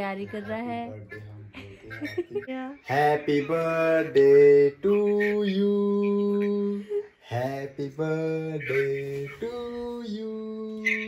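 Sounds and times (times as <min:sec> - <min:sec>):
person singing slow tune: 0:00.2 - 0:11.0.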